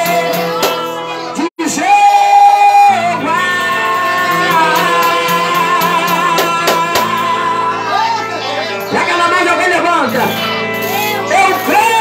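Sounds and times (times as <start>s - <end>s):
instrumental accompaniment: 0.0s - 12.0s
man singing into microphone: 0.0s - 12.0s.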